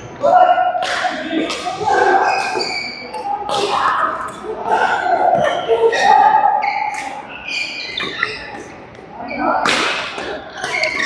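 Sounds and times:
racket hitting shuttlecock: 9.6 - 11.0.

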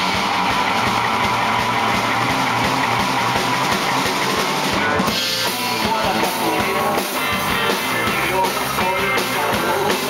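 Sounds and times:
amplified electric guitar: 0.0 - 10.0
rock band playing live: 0.0 - 10.0.

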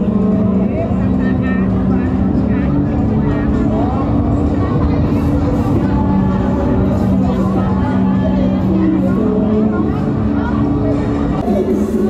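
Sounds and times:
loud music from bars: 0.0 - 12.0
voices of passers-by: 0.0 - 12.0.

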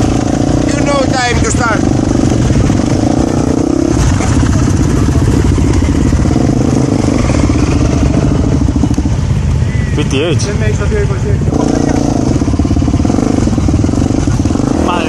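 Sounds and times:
motorcycle engine idling: 0.0 - 15.0.

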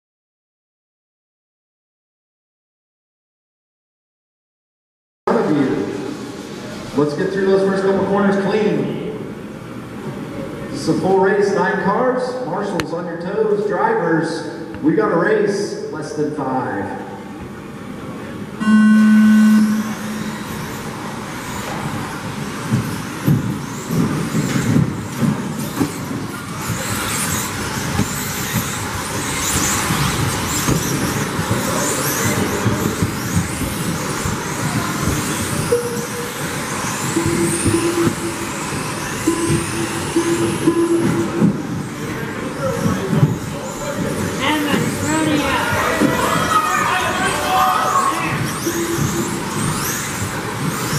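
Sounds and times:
beep-like tone: 18.6 - 20.7, 35.7 - 41.6, 48.6 - 49.5
electric motors whining: 18.6 - 50.9.

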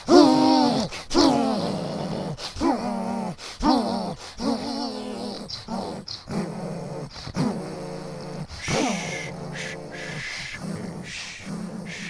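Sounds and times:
monster growls and groans: 0.0 - 12.0
breathy hiss: 3.3 - 6.1, 6.8 - 12.0.

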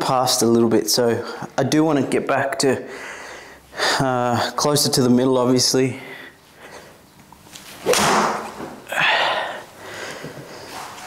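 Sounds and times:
golf club striking ball: 7.8 - 8.7.

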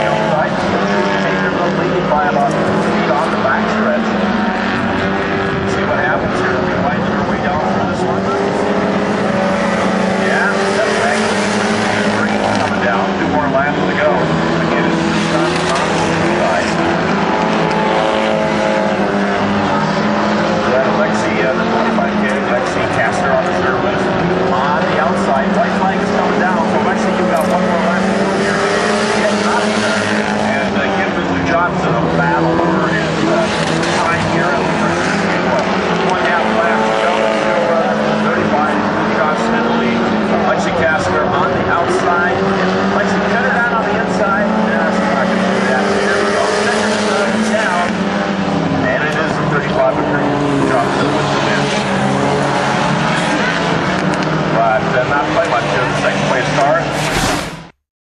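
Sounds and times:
racing car engines revving: 0.0 - 57.8.

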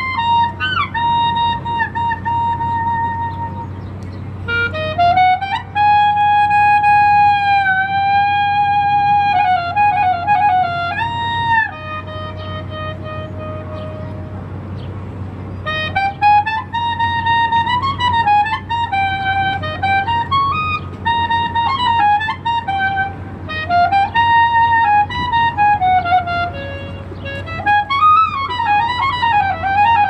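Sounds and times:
clarinet playing solo melody: 0.0 - 14.5, 15.6 - 30.0.

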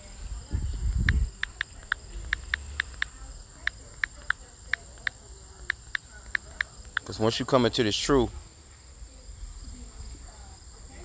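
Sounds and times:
touchscreen keyboard clicks: 1.4 - 7.1.

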